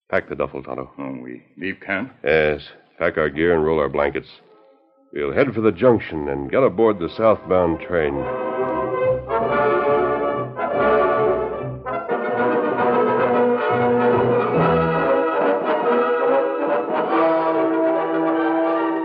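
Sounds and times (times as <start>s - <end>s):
orchestral music led by brass: 5.4s - 19.0s.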